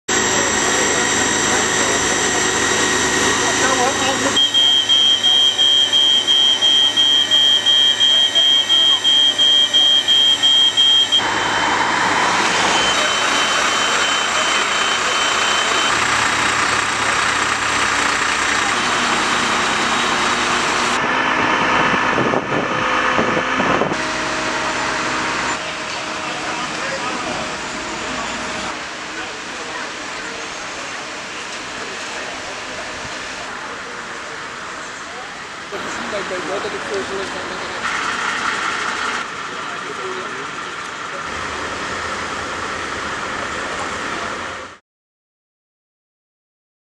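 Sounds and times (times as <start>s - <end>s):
fire engine engine and pump running: 0.1s - 44.8s
indistinct voices: 0.2s - 21.1s, 22.2s - 44.7s
high electronic beeps: 2.4s - 11.3s, 12.5s - 16.3s.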